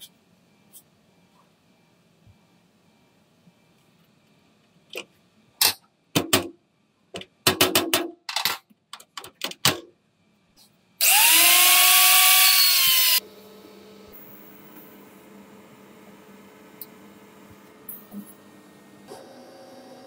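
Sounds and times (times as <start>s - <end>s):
angle grinder on steel: 11.0s - 13.2s.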